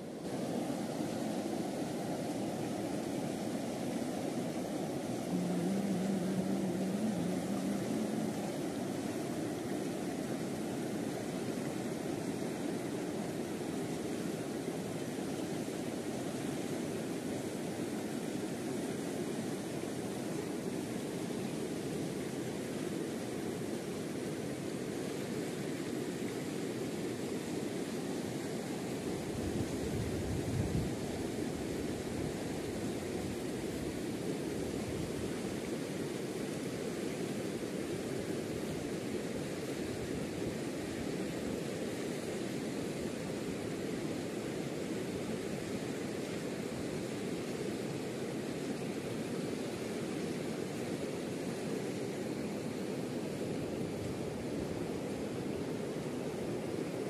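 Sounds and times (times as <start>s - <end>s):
river rushing: 0.0s - 57.0s.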